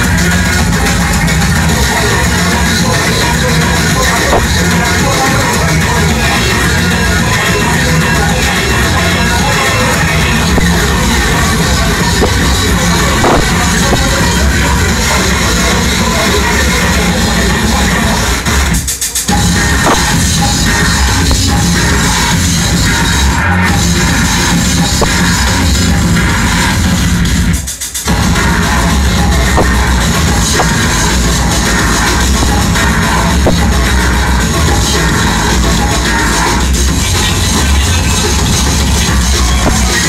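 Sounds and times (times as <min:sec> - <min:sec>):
electronic dance music: 0:00.0 - 0:40.0.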